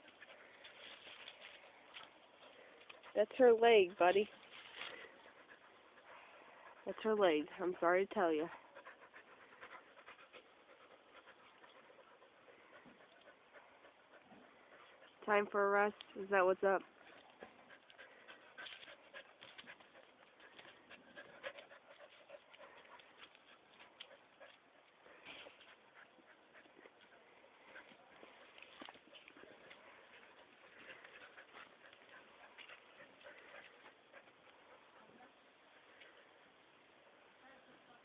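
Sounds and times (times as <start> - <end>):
faint dog sounds: 0.0 - 38.0.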